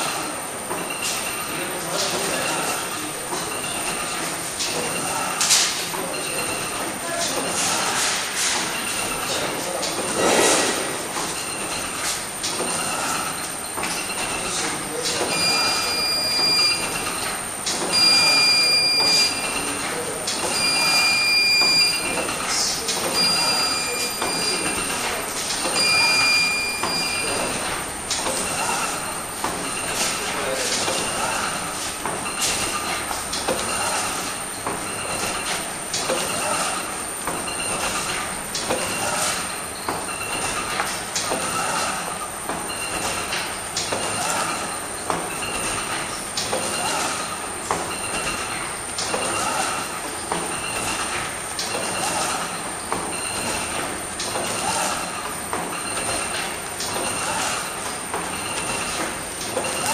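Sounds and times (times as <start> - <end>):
machine clacking: 0.0 - 59.9.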